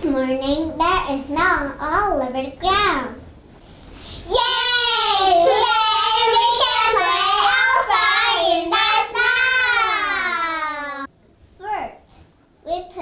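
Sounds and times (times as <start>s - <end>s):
young children singing: 4.3s - 11.1s.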